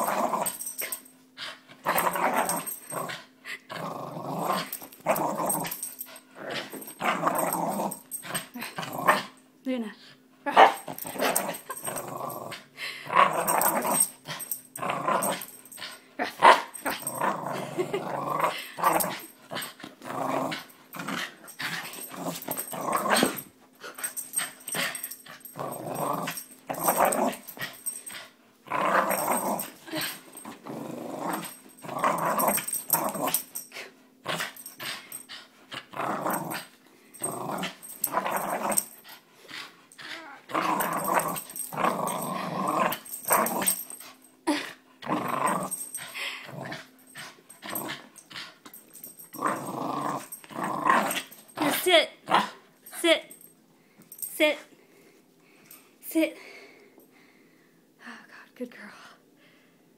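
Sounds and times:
dog growling: 0:01.8 - 0:09.4, 0:10.8 - 0:52.6.

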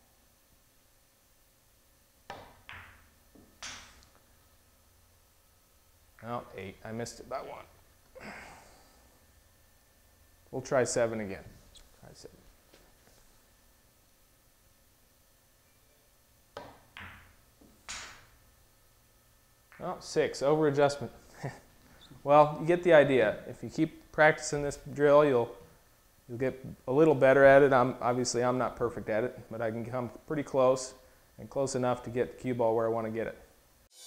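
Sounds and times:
pool balls knocking: 0:02.2 - 0:04.2, 0:16.5 - 0:18.4.

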